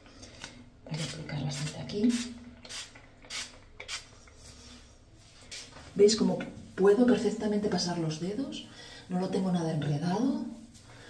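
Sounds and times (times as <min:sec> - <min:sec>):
spray bottle hissing: 0:02.1 - 0:04.1.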